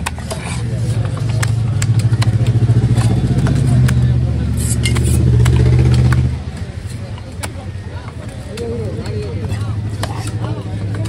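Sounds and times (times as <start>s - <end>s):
vehicle engine running: 0.7s - 11.0s.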